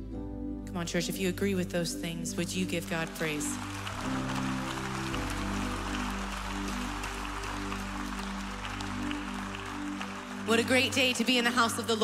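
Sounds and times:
soft worship band music: 0:01.8 - 0:12.0
congregation applauding: 0:02.7 - 0:12.0.

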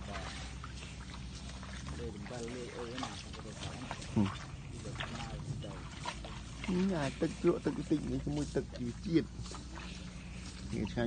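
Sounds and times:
water sloshing: 0:00.0 - 0:11.0.

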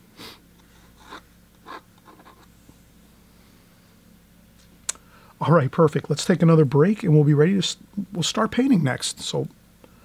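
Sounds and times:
pencil scratching on paper: 0:01.0 - 0:02.5.

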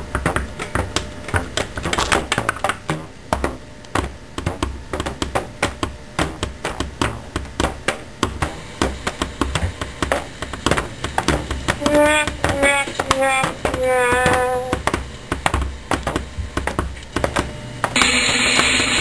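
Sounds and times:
irregular sharp taps and clicks: 0:00.1 - 0:18.1.

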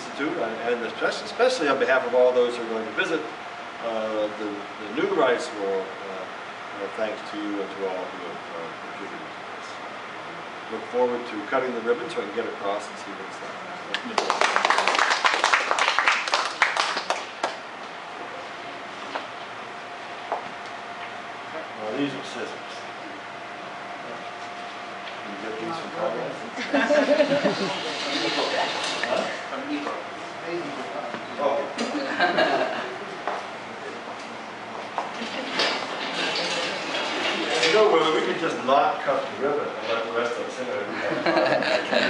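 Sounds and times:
steady hum: 0:00.0 - 0:42.0
people clapping: 0:13.9 - 0:17.6
indistinct group chatter: 0:25.4 - 0:34.1, 0:35.2 - 0:38.6.

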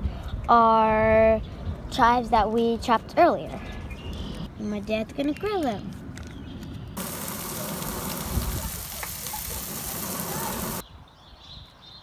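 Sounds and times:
chicken sizzling on a grill: 0:07.0 - 0:10.8.

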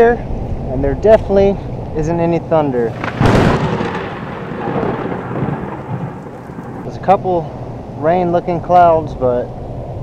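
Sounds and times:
thunder crack and rumble: 0:02.9 - 0:07.3.

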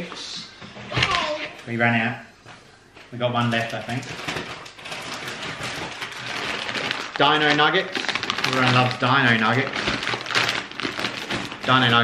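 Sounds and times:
plastic packaging crinkling: 0:03.3 - 0:12.0.

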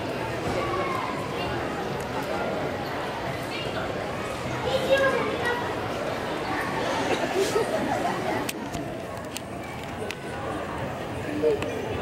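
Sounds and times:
chatter of adults and children: 0:00.0 - 0:12.0.

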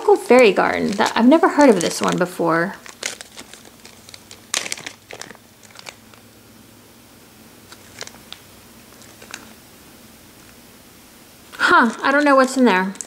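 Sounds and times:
plastic packaging crinkling: 0:00.0 - 0:06.3, 0:07.6 - 0:09.6, 0:11.4 - 0:13.0.

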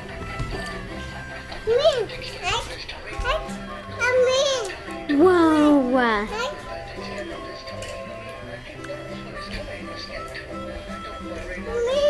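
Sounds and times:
tune playing in background: 0:00.0 - 0:12.0.

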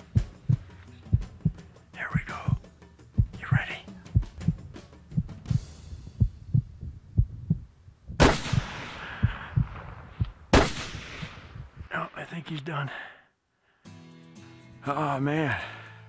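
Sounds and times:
heartbeat thumping: 0:00.0 - 0:10.5, 0:11.5 - 0:11.9
shotgun shots: 0:08.2 - 0:11.6.

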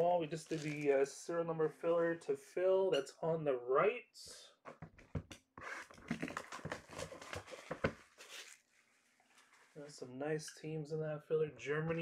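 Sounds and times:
shrink wrap and cardboard rustling: 0:00.3 - 0:01.0, 0:05.6 - 0:09.8
foil packs handled: 0:00.5 - 0:00.9, 0:06.3 - 0:08.7.

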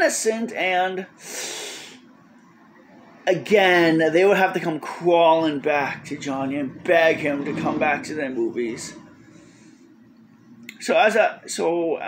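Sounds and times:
person drawing quick breath: 0:01.2 - 0:02.0.

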